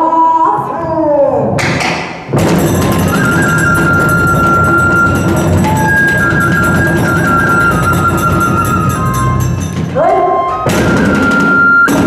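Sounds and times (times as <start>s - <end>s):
taiko drum beating: 2.3s - 12.0s
small hand cymbals clashing: 2.4s - 10.0s.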